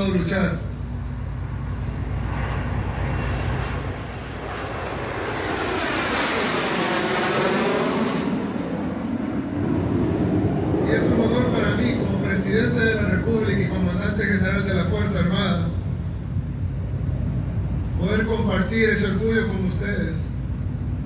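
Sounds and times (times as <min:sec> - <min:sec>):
aircraft flying overhead: 0:00.0 - 0:21.0.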